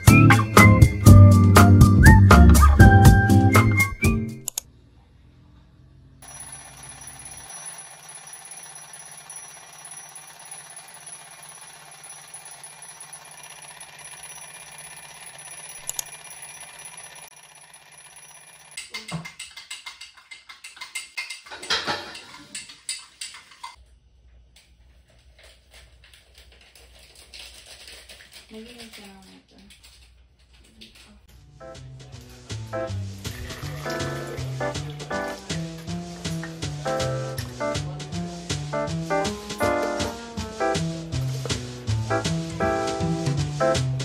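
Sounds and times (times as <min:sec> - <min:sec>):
alarm clock ringing: 0:06.2 - 0:18.9.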